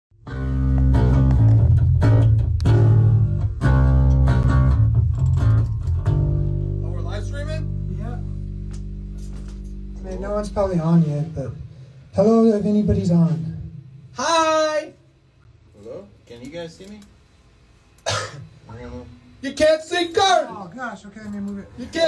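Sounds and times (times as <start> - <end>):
heavy electric guitar riff: 0.2 - 12.1.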